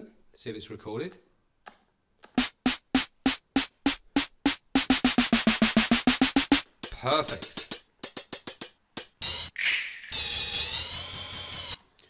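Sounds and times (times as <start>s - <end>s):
short percussive sample hits: 2.4s - 9.1s.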